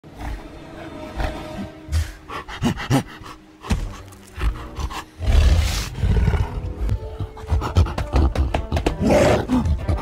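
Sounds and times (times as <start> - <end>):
giant gorilla growls: 4.3 - 6.8.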